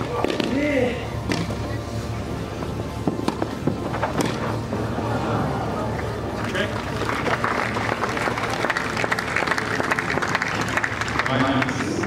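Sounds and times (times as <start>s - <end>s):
background music: 0.0s - 12.0s
tennis racquets striking ball: 0.2s - 0.6s, 3.0s - 4.4s.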